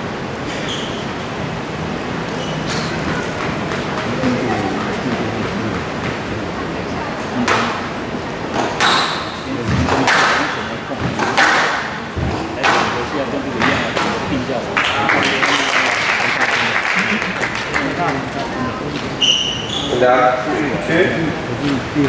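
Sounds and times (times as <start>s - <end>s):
crowd murmur: 2.0s - 22.0s
squash ball impacts: 8.5s - 14.2s.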